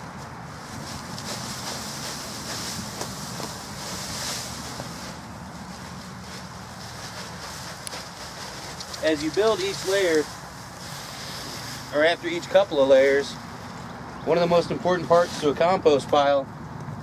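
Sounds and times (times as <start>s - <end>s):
dry leaves rustling: 0.0s - 16.0s.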